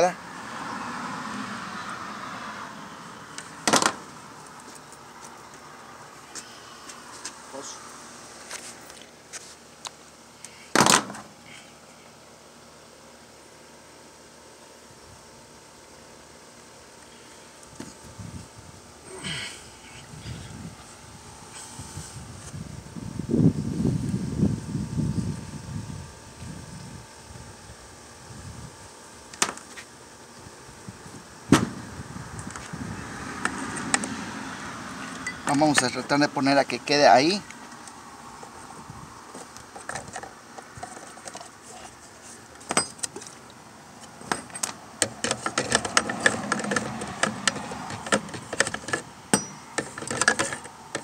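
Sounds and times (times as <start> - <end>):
rustling and scraping: 3.4 - 7.5, 8.1 - 11.7, 29.4 - 29.9, 37.6 - 51.0.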